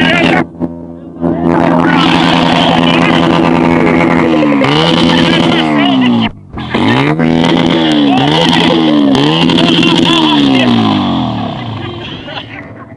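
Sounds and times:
car engine revving: 0:00.0 - 0:12.8.

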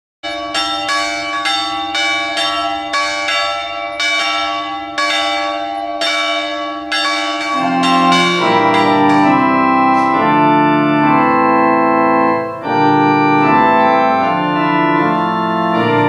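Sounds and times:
church bell ringing: 0:00.2 - 0:16.0
organ playing sustained chords: 0:00.3 - 0:16.0.

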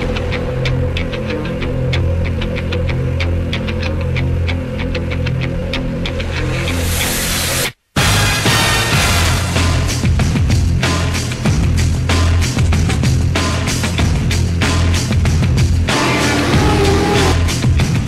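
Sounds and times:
low drone: 0:15.8 - 0:17.6.

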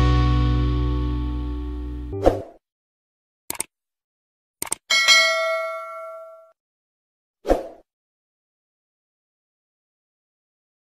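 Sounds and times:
double mouse click: 0:04.6 - 0:04.8
notification bell chime: 0:04.9 - 0:06.5.

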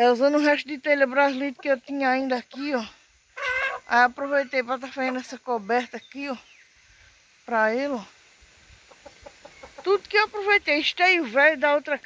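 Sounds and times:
chickens clucking faintly: 0:01.0 - 0:06.1, 0:08.1 - 0:10.8.

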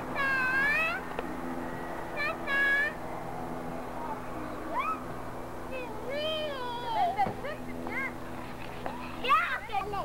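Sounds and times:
child squealing: 0:04.7 - 0:05.1.

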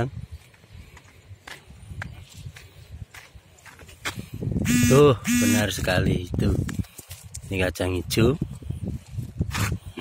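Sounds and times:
footsteps on concrete: 0:00.2 - 0:04.5.

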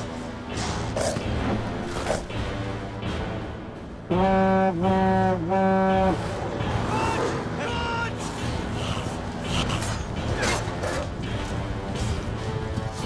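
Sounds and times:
orchestral film score: 0:00.0 - 0:13.0.

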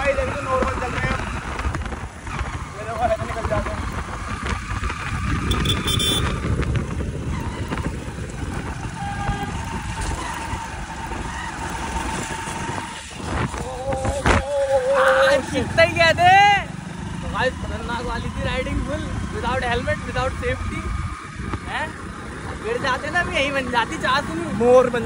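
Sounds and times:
wind on microphone: 0:00.0 - 0:15.1
motorcycle engine running: 0:00.0 - 0:25.0
person calling out loudly: 0:13.6 - 0:15.5.

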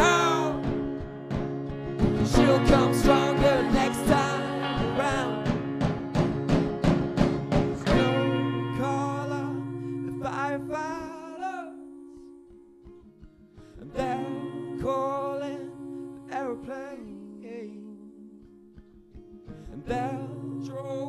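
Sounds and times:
man and woman singing: 0:00.0 - 0:00.9, 0:02.1 - 0:05.8, 0:07.8 - 0:12.0, 0:13.8 - 0:18.6, 0:19.7 - 0:21.0
acoustic guitar strumming: 0:00.0 - 0:21.0.

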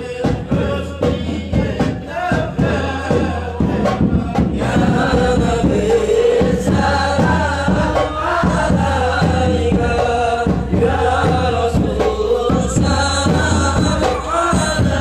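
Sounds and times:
men chanting in unison: 0:00.0 - 0:15.0
steady rhythmic beat: 0:00.0 - 0:15.0.

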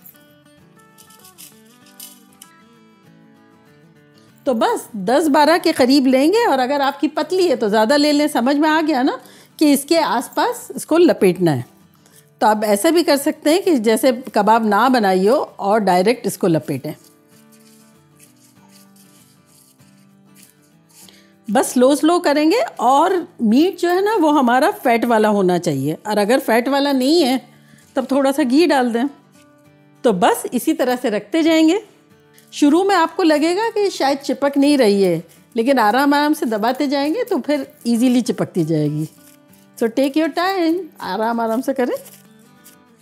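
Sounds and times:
soft background music: 0:00.0 - 0:43.0
gloved hands rubbing meat: 0:16.7 - 0:21.2, 0:32.7 - 0:43.0.

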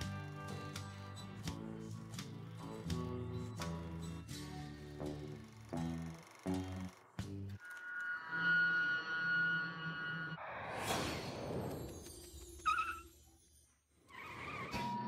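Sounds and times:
brief high squeak: 0:12.6 - 0:13.2.

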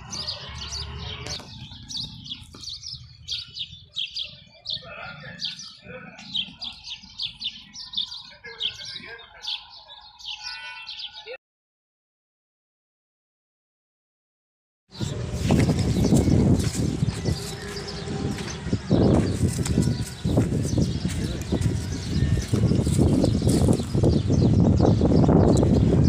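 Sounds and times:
small birds chirping: 0:00.0 - 0:11.4, 0:14.9 - 0:26.0.

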